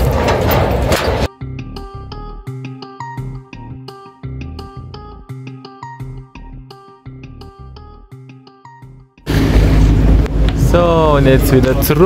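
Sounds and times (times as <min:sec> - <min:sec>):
footsteps on metal stairs: 0:00.0 - 0:01.3
plucked notes over low bass: 0:01.2 - 0:12.0.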